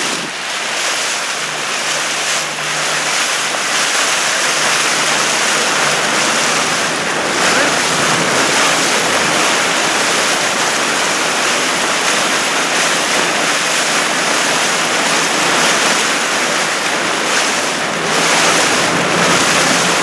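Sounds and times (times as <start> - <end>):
rushing water: 0.0 - 20.0
wind buffeting microphone: 0.0 - 20.0.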